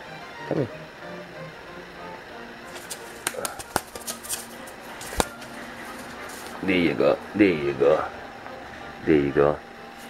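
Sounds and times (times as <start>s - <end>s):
dove wings flapping: 2.7s - 6.5s
claws scrabbling clicks: 2.7s - 6.6s.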